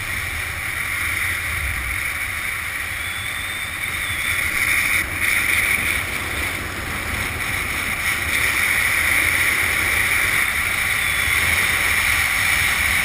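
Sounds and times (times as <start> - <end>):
wind rushing over microphone: 0.0 - 13.0.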